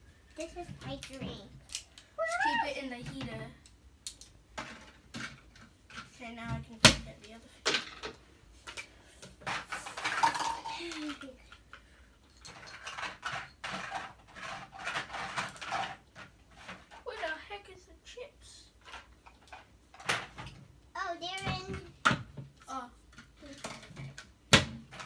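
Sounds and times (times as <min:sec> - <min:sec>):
plastic toy dishes clattering: 0:07.6 - 0:11.7, 0:12.3 - 0:17.3.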